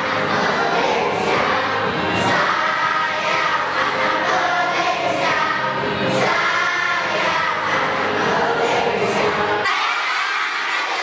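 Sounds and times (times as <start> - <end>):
children singing in unison: 0.0 - 11.0.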